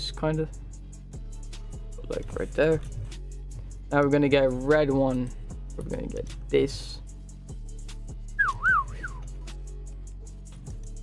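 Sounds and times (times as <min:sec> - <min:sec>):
background music: 0:00.0 - 0:11.0
person whistling: 0:08.4 - 0:09.2.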